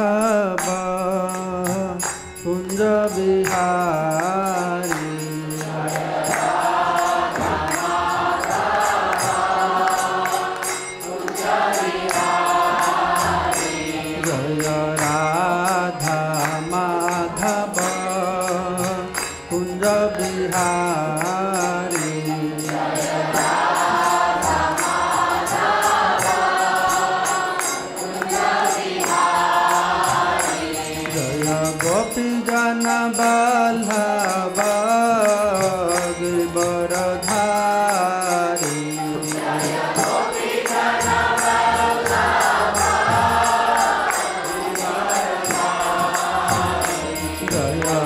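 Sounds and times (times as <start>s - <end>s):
man singing a slow chant: 0.0s - 7.1s, 14.0s - 22.8s, 30.8s - 39.3s, 45.6s - 48.0s
quick percussion beat: 1.5s - 48.0s.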